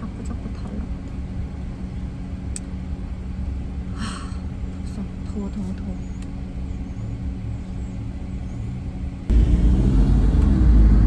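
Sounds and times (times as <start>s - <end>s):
engine and road hum: 0.0s - 11.0s
loud deep rumble: 0.0s - 11.0s.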